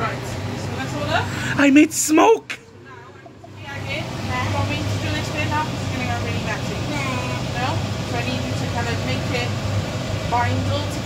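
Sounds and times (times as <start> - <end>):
extractor fan humming: 0.0 - 11.0.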